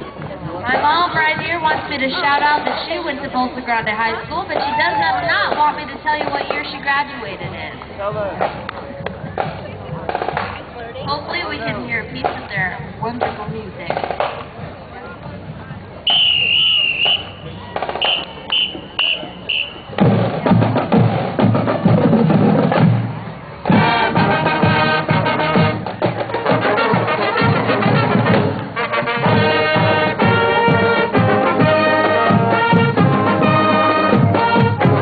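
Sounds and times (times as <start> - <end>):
marching drumline: 0.1 - 35.0
whistle blasts: 16.0 - 20.0
brass and woodwinds playing: 16.1 - 20.0, 23.7 - 35.0.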